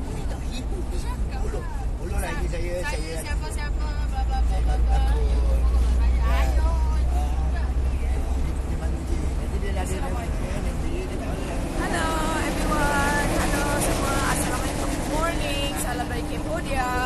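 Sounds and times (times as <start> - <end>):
passengers chattering: 0.0 - 17.0
road noise: 0.0 - 17.0
van engine rumble: 0.0 - 17.0.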